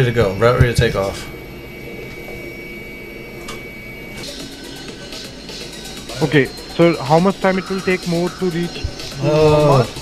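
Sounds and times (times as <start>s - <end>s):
jet engine hum and whine: 0.0s - 10.0s.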